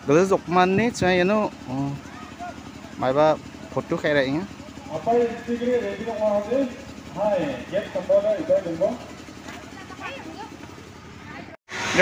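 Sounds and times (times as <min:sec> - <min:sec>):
people talking: 0:00.0 - 0:09.0, 0:09.6 - 0:10.6.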